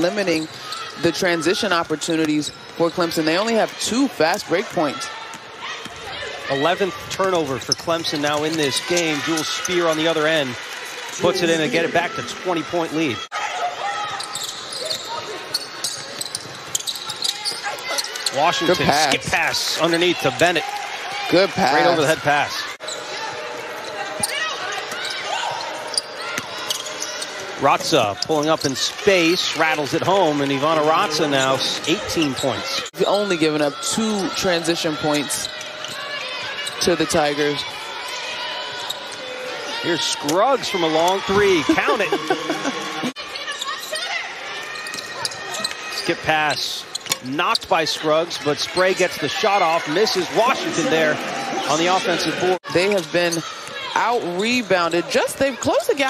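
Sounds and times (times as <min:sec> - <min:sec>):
court noise: 0:00.0 - 0:56.0
gym background noise: 0:00.0 - 0:56.0.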